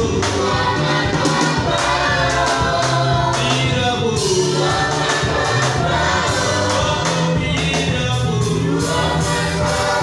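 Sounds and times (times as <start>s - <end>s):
gospel singing through pa: 0.0s - 10.0s
instrumental accompaniment with bass: 0.0s - 10.0s.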